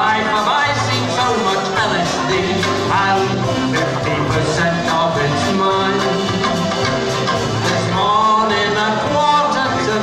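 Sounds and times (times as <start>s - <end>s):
live band playing upbeat song: 0.0s - 10.0s
man singing: 0.0s - 10.0s.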